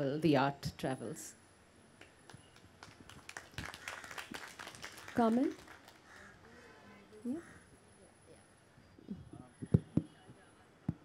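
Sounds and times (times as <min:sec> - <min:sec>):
audience applauding: 0:02.5 - 0:06.6.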